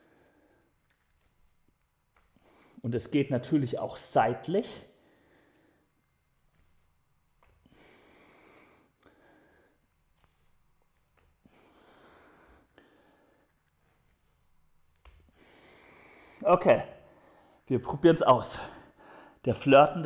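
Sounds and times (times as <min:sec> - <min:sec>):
man breathing: 0:00.0 - 0:01.3, 0:02.2 - 0:02.8, 0:04.8 - 0:06.8, 0:07.5 - 0:10.5, 0:11.3 - 0:14.3, 0:15.2 - 0:17.7, 0:18.5 - 0:19.5.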